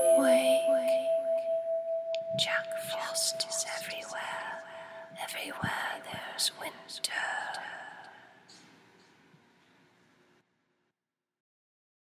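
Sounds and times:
long held musical tone: 0:00.0 - 0:06.3
person whispering: 0:02.4 - 0:08.8.

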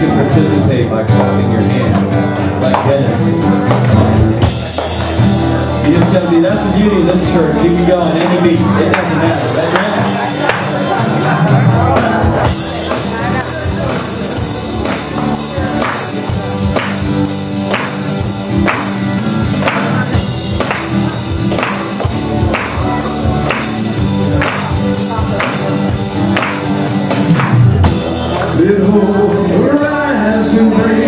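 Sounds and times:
acoustic guitar: 0:00.0 - 0:31.0
electric bass: 0:00.0 - 0:31.0.

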